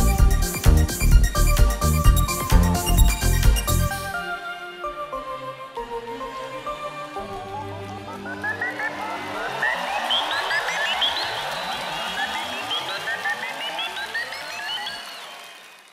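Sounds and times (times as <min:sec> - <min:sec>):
electronic synthesizer music: 0:00.0 - 0:15.1.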